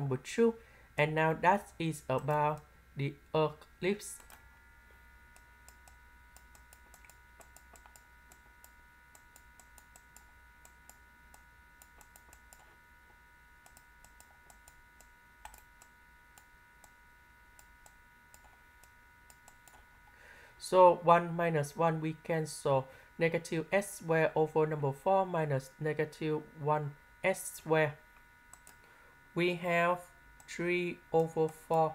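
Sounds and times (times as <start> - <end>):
faint high whine: 0.0 - 31.9.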